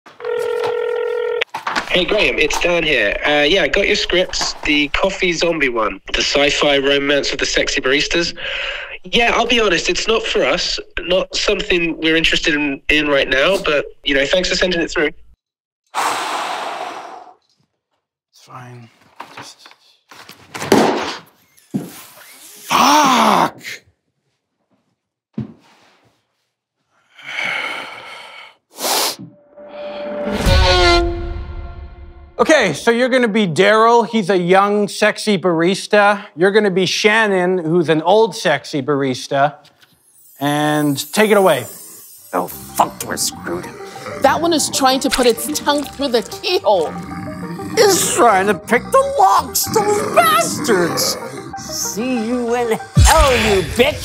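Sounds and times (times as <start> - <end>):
telephone ringing: 0.1 - 1.5
man's strained ahh: 15.9 - 17.4, 22.4 - 23.8
sharp burst of breath: 15.9 - 17.4, 27.5 - 29.2.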